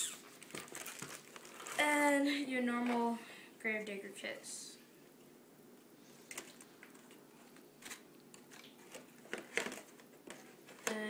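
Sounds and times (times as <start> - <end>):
plastic bag crinkling: 0.0 - 2.1
boy's voice: 1.8 - 4.8.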